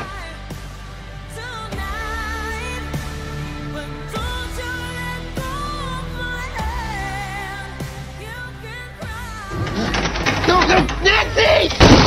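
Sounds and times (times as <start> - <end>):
song: 0.0 - 11.1
strained vocal cries: 0.0 - 12.0
crashes and knocks: 11.7 - 12.0.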